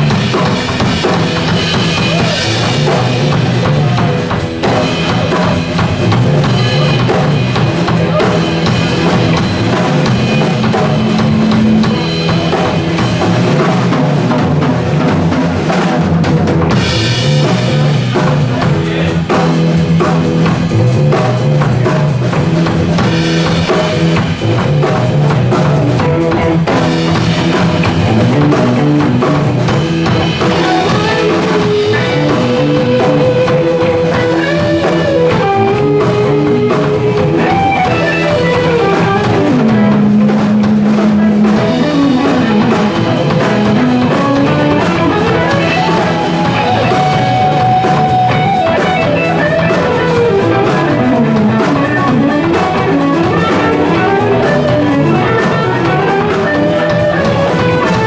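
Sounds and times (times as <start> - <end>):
lead guitar sliding long notes: 0.0 - 15.6, 16.6 - 58.0
rock band playing: 0.0 - 58.0
steady drum beat: 0.0 - 58.0.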